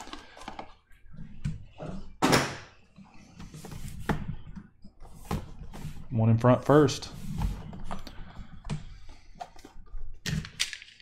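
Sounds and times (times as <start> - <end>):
cardboard scrape: 7.0 - 7.8.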